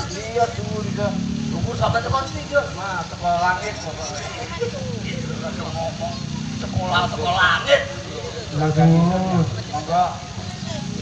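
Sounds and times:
people talking through microphones: 0:00.0 - 0:11.0.

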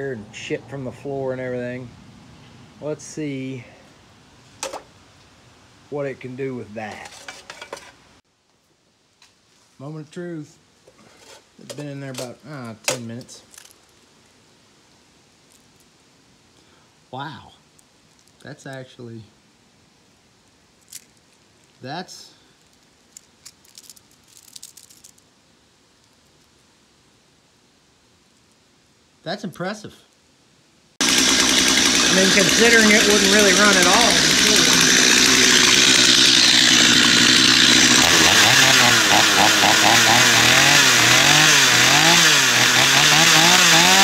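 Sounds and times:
electric sander shaking pan: 0:06.9 - 0:08.0, 0:31.0 - 0:36.8.

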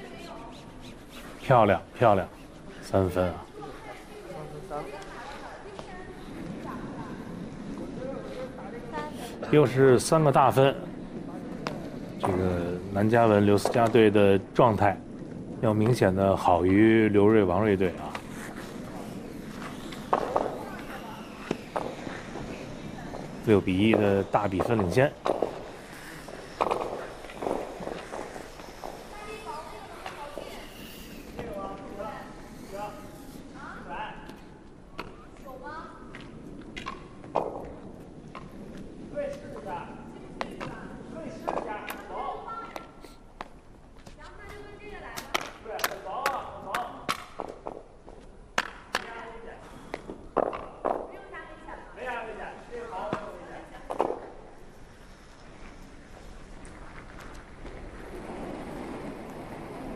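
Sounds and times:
players talking: 0:00.0 - 0:43.2.

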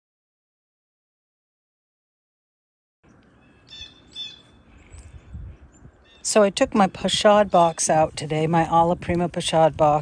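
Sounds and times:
small bird chirping: 0:03.1 - 0:06.4.

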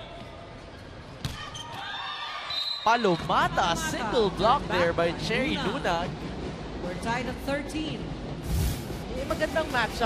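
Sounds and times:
arena background noise: 0:00.0 - 0:10.0.

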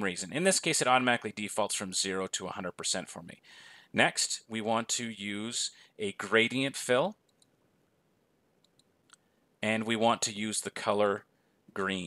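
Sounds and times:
faint computer mouse clicks: 0:08.6 - 0:09.3.

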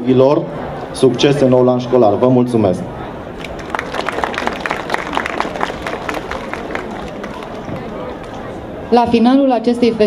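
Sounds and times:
audience applauding: 0:03.4 - 0:08.6.

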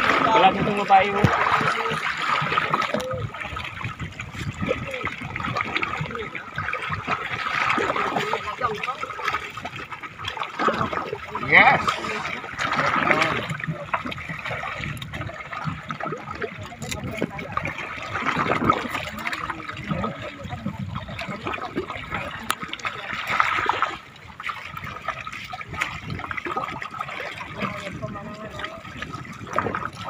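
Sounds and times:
people talking: 0:00.0 - 0:03.6, 0:11.0 - 0:14.1, 0:16.2 - 0:17.8, 0:18.7 - 0:23.4, 0:27.5 - 0:29.0
water sloshing and splashing: 0:00.0 - 0:30.0.

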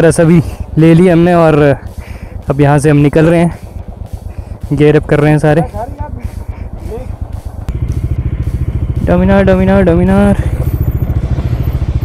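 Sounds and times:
motorcycle engines idling: 0:00.0 - 0:12.0.

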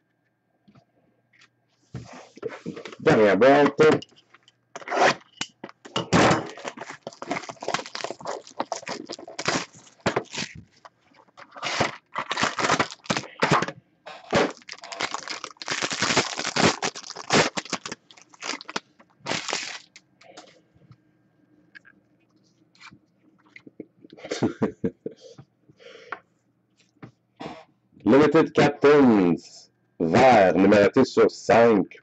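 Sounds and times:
plastic wrap crackling: 0:06.5 - 0:13.6, 0:14.2 - 0:20.0.

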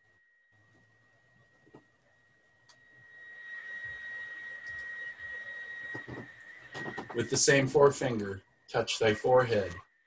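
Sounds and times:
high-pitched electronic whine: 0:00.0 - 0:10.0.

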